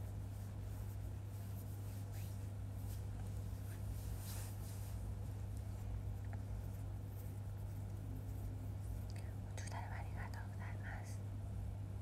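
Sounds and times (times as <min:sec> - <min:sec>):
person whispering: 0:09.1 - 0:11.2.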